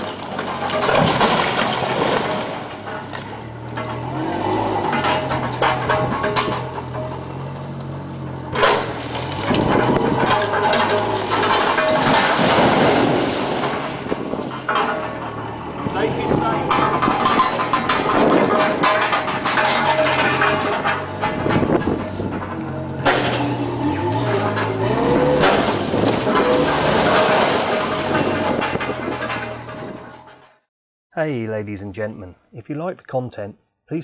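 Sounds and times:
wall crashing: 0.0 - 7.5, 8.5 - 30.6
forklift engine running: 0.0 - 30.5
brickwork collapsing: 0.0 - 30.7.

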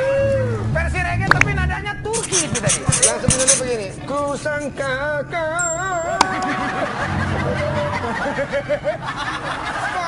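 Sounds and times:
person laughing: 6.2 - 10.0.

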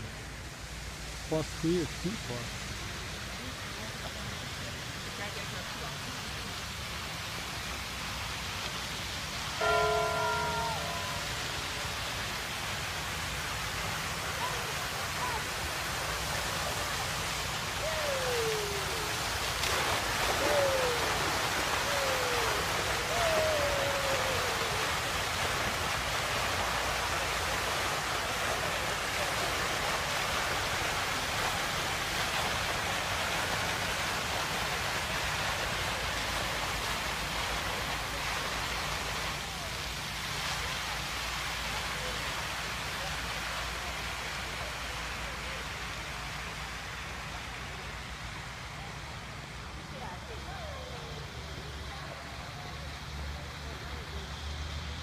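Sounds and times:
fountain water splashing: 0.0 - 55.0
short falling calls: 9.6 - 11.8, 20.0 - 25.1.

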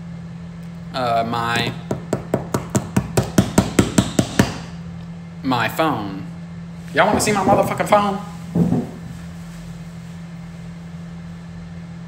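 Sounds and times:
rapid sharp tapping: 1.9 - 4.6.

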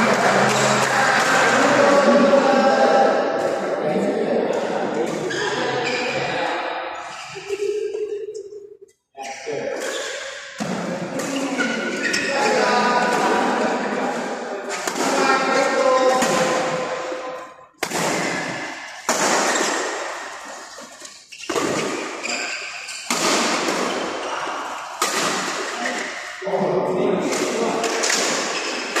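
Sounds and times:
players calling: 0.0 - 3.6
racket hitting shuttlecock: 9.8 - 26.4, 27.3 - 29.0.

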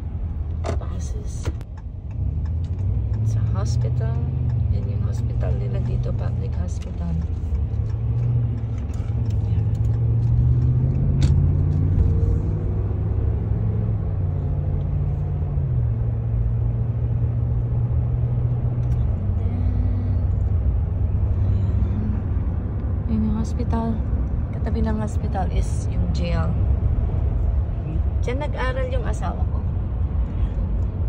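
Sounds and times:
car engine: 0.0 - 31.0
road noise: 0.0 - 31.0.

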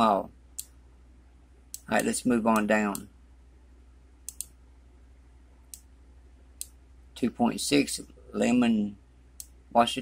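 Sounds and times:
faint low hum: 0.0 - 10.0
computer mouse clicking: 4.2 - 4.6.

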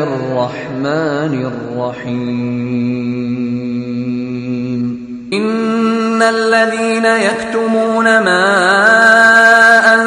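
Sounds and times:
person chanting: 0.0 - 10.0.

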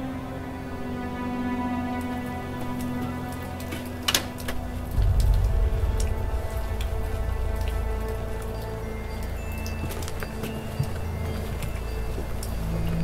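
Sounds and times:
ominous film score: 0.0 - 13.0
deep low rumble: 4.6 - 9.8.

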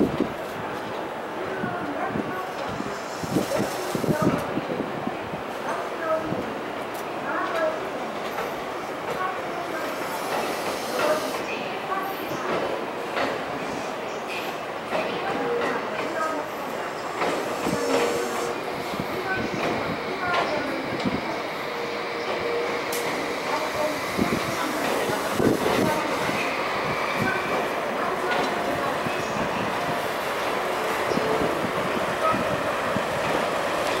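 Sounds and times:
trains running in rail yard: 0.0 - 34.0
train wheels clicking over rail joints: 22.3 - 29.1.

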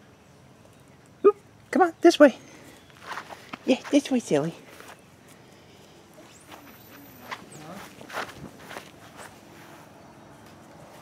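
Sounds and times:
footsteps through grass and leaves: 2.9 - 11.0.

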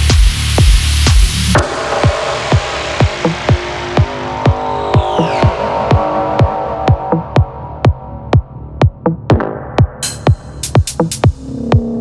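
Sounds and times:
kick drum: 0.0 - 12.0
minimal techno music: 0.0 - 12.0.

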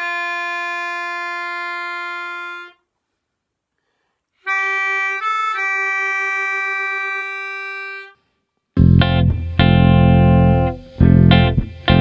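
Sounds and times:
melodica long reedy note: 0.0 - 2.9, 4.4 - 12.0.

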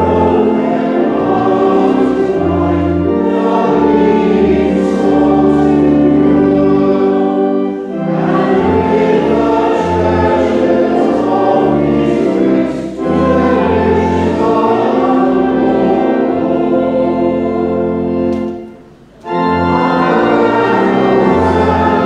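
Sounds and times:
congregation singing a hymn: 0.0 - 22.0
organ accompaniment: 0.0 - 22.0.

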